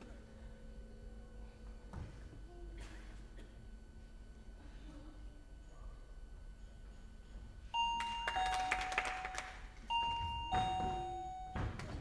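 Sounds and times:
two-tone doorbell chime: 7.7s - 12.0s.

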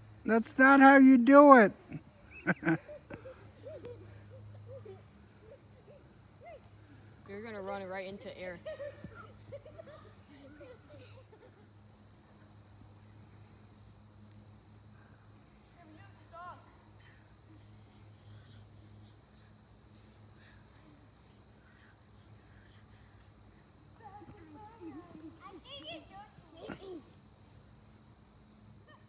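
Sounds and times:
high-pitched insect chorus: 0.0s - 29.0s
distant children's voices: 20.4s - 27.6s.

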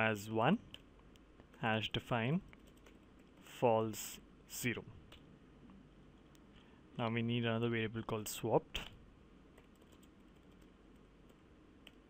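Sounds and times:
low steady hiss: 0.0s - 12.0s
computer keyboard typing: 2.5s - 3.3s, 9.5s - 12.0s.

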